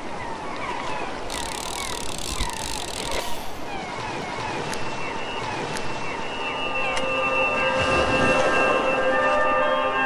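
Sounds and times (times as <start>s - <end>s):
gulls calling: 1.1s - 4.7s.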